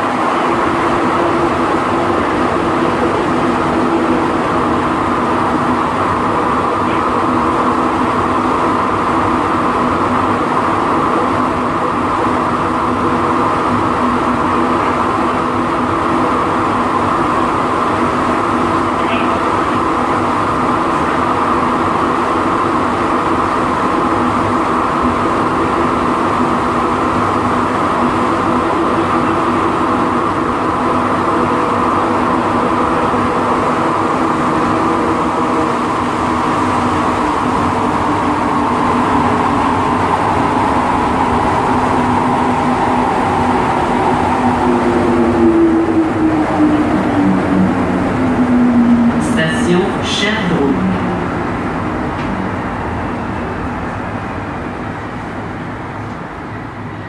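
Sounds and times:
train rumble and motor hum: 0.0s - 57.0s.

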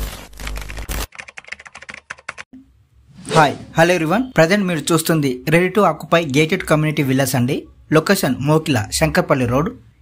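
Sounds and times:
music hit: 3.1s - 4.2s.

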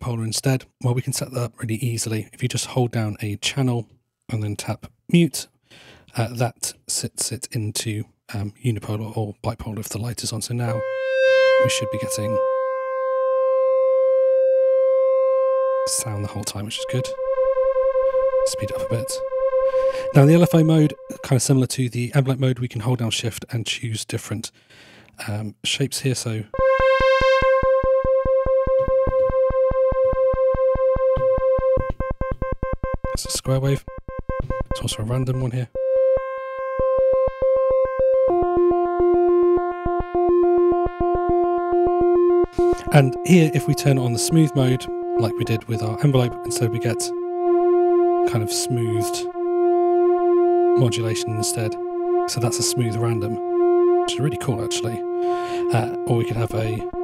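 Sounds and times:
sustained synth pulse wave note: 10.7s - 21.6s, 26.6s - 57.0s.

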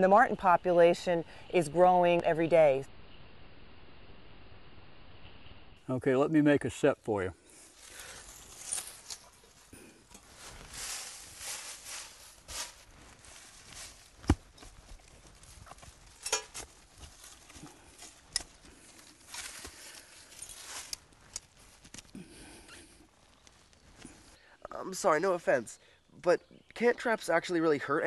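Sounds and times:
trowel digging in soil and leaves: 7.7s - 22.1s
dirt scooped into sifting screen: 10.3s - 14.0s.

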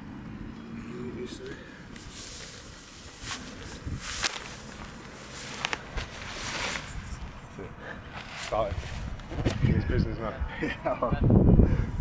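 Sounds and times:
cloth rustling: 2.0s - 7.4s
footsteps: 2.0s - 7.5s.

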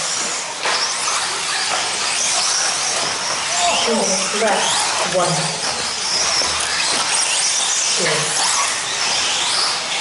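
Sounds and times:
rc car motor whine: 0.0s - 10.0s.

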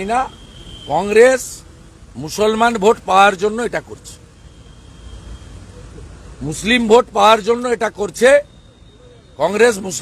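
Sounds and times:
outdoor street noise: 0.0s - 10.0s
road traffic rumble: 0.0s - 10.0s.

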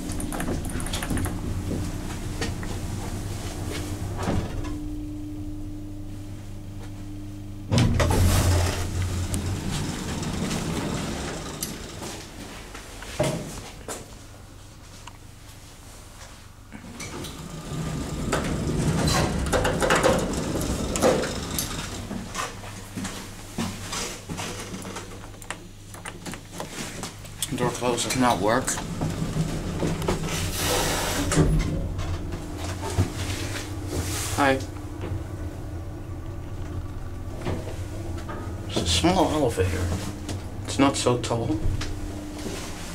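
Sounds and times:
elevator machinery rumble: 0.0s - 13.0s, 16.8s - 42.9s
steady low hum: 0.0s - 42.9s.

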